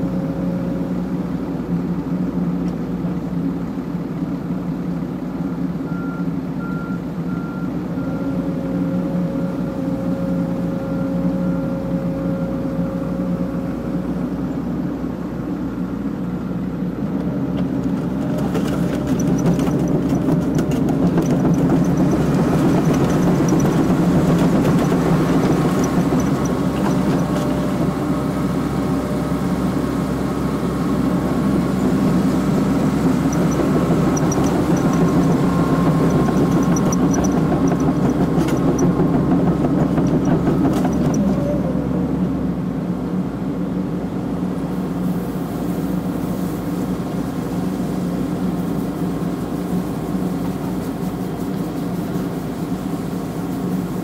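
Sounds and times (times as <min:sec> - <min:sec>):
excavator diesel engine running: 0:00.0 - 0:54.0.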